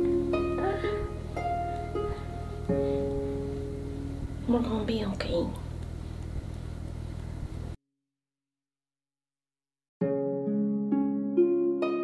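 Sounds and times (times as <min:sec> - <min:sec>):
low room hum: 0:00.0 - 0:07.8.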